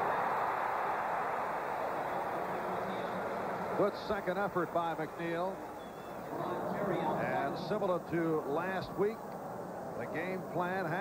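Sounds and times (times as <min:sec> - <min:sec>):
stadium crowd cheering: 0:00.0 - 0:08.5.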